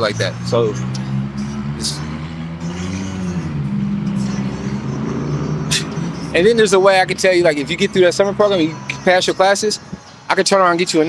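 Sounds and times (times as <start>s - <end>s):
motor vehicle engine humming: 0.0s - 11.0s.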